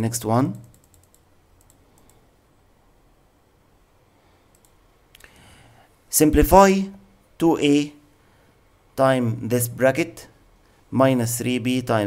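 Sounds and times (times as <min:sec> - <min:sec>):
soft hiss: 0:00.0 - 0:12.0
faint computer clicks: 0:00.6 - 0:02.2, 0:04.5 - 0:05.4.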